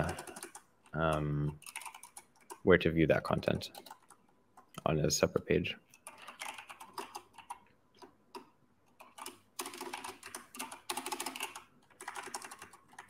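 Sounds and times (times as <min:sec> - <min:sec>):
computer keyboard typing: 0:00.0 - 0:02.7, 0:03.4 - 0:04.7, 0:05.9 - 0:13.0.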